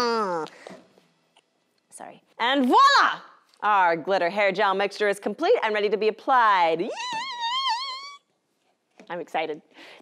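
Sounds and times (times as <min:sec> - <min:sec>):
woman's high squealing yay: 0:06.9 - 0:08.3.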